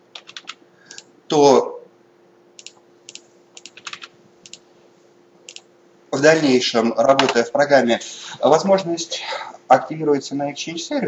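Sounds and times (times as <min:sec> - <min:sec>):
faint steady hum: 0:00.0 - 0:11.0
computer clicks: 0:00.1 - 0:01.1, 0:02.6 - 0:04.6, 0:05.5 - 0:05.7.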